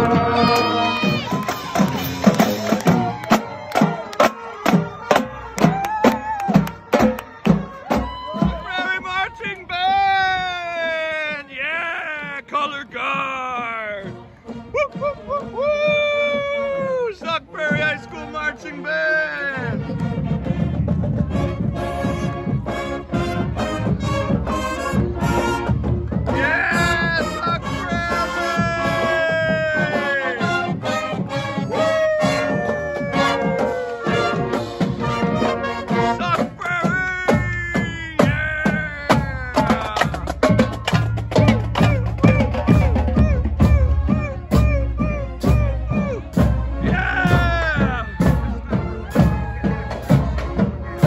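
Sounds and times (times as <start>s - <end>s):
marching band horns: 0.0s - 8.9s, 13.9s - 15.6s, 17.6s - 51.0s
drumline playing cadence: 0.0s - 9.4s, 19.6s - 51.0s
crowd cheering: 0.0s - 12.5s, 25.1s - 51.0s.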